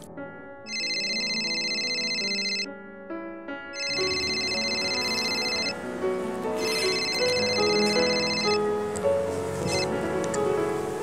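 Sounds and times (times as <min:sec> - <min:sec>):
phone ringtone melody: 0:00.7 - 0:02.7, 0:03.8 - 0:05.8, 0:06.6 - 0:08.7, 0:09.6 - 0:09.9.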